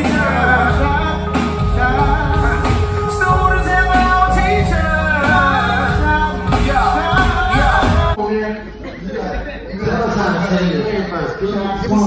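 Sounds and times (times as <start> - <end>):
band music: 0.0 - 8.2
chatter of voices in a hall: 0.0 - 12.0.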